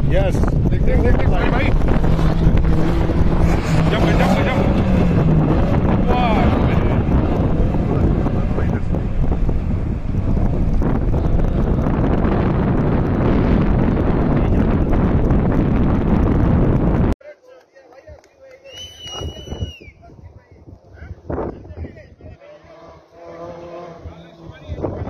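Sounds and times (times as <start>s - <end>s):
wind buffeting microphone: 0.0s - 17.2s, 18.8s - 25.0s
short whistle-like tone: 18.7s - 20.0s.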